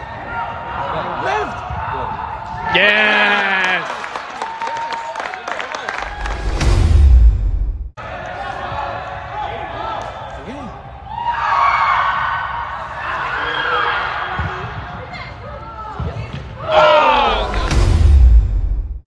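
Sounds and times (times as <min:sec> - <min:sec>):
players shouting in a hall: 0:00.0 - 0:06.6, 0:08.0 - 0:17.8
loud low rumble: 0:06.0 - 0:08.0.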